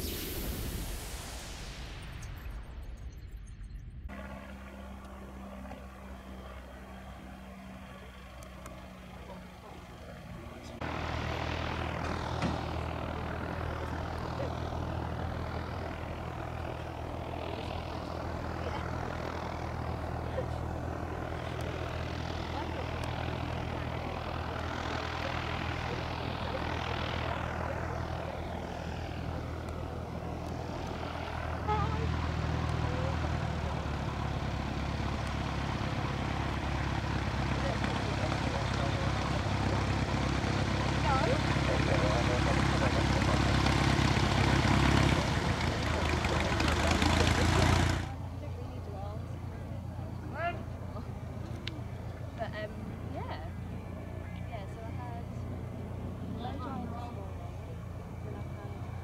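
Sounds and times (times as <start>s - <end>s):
hiss sweeping in pitch: 0.0s - 2.4s
distant engine running: 0.0s - 59.0s.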